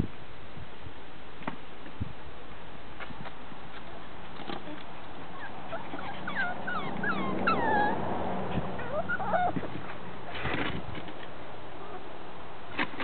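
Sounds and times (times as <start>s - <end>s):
puppies whimpering and yipping: 5.0s - 10.6s.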